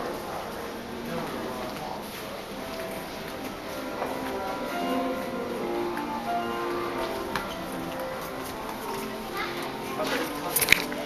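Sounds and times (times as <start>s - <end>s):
background music: 0.0s - 11.0s
people chattering: 0.0s - 11.0s
children's voices: 2.9s - 11.0s.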